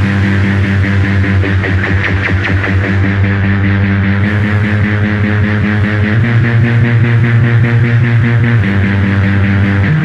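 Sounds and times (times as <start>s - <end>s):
fast pulsing buzz: 0.0s - 10.0s
loud low electronic drone: 0.0s - 10.0s.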